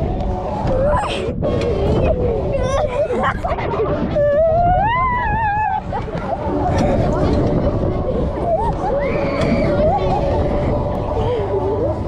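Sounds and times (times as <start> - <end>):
wind rumble on microphone: 0.0 - 12.0
fairground music: 5.7 - 12.0.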